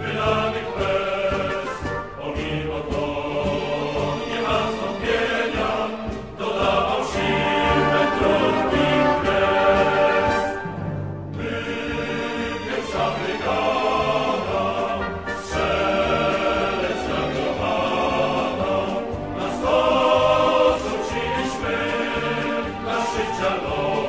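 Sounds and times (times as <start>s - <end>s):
choir singing: 0.0s - 24.0s.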